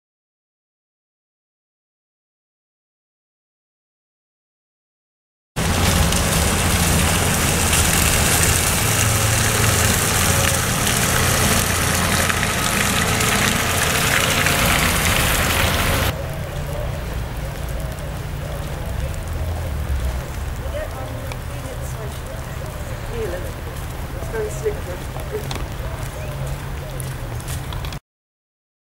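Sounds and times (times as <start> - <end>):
faint voices: 5.6 - 27.5
traffic hiss on wet road: 5.6 - 28.0.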